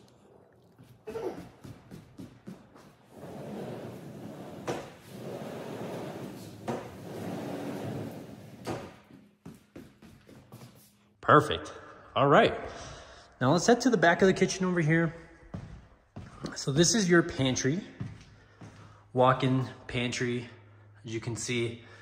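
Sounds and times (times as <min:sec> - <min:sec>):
glass door panels rolling on track: 0:03.1 - 0:09.0.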